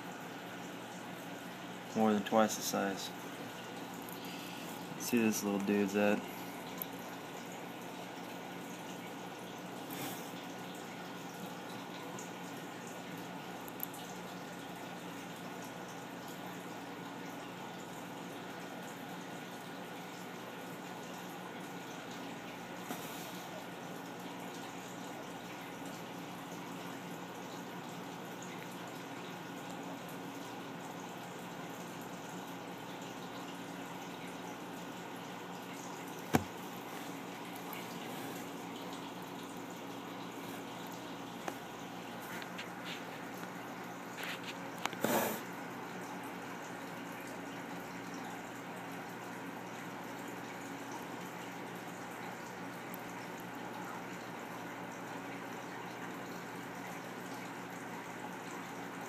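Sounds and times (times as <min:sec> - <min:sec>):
low hum with faint hiss: 0:00.0 - 0:59.0.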